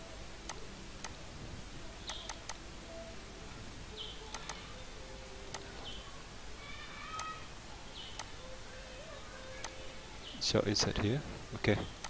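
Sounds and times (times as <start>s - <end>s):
computer mouse clicks: 2.1s - 2.6s, 4.3s - 4.6s, 5.5s - 6.0s, 8.2s - 8.4s.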